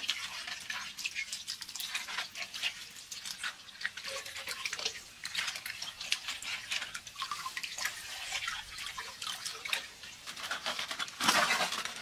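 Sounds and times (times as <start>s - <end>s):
running tap: 0.0s - 12.0s
water splashing and trickling: 0.0s - 12.0s.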